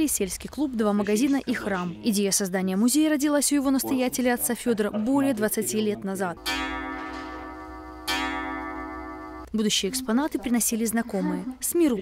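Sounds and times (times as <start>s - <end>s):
clock striking gong: 6.4s - 9.5s.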